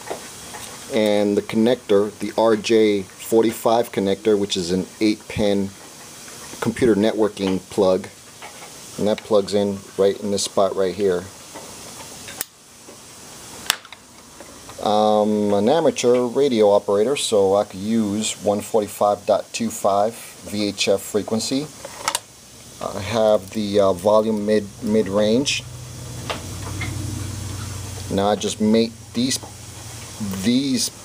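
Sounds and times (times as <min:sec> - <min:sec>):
radio low buzz: 0:22.4 - 0:31.0.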